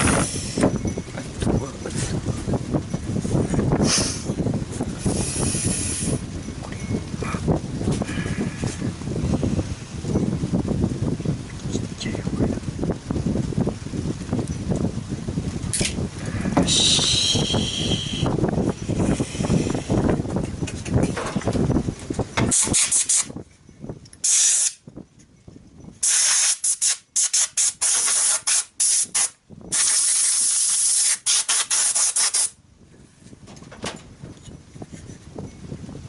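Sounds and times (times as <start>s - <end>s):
compressed air blow gun hissing: 0.0s - 0.7s, 3.8s - 4.3s, 5.0s - 6.2s, 16.6s - 18.3s, 24.2s - 24.8s, 26.0s - 32.6s.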